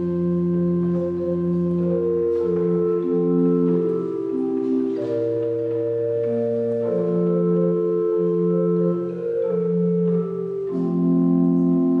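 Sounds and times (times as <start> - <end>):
chest organ playing sustained chords: 0.0 - 12.0.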